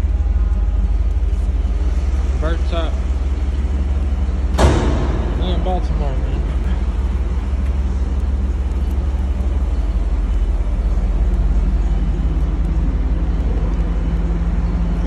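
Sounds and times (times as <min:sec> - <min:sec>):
car engine idling: 0:00.0 - 0:15.0.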